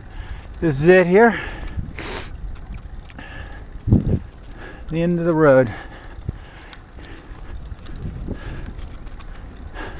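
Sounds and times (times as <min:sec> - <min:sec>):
bicycle rolling on pavement: 0:00.0 - 0:09.9
wind on microphone: 0:01.4 - 0:04.9, 0:06.1 - 0:09.9.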